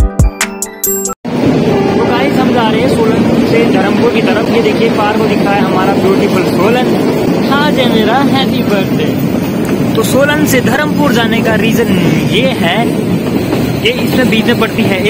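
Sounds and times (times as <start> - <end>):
passengers chattering: 1.4 - 15.0.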